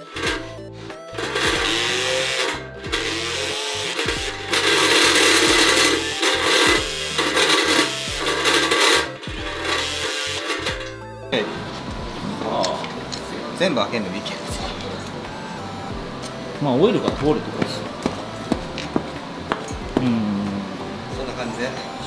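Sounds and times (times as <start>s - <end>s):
power tool whirring on sheet metal: 0.0s - 12.2s
background music: 0.0s - 22.0s.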